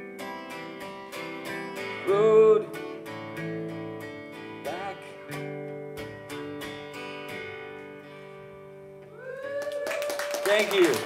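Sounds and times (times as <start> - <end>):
acoustic guitar strumming: 0.0 - 9.2.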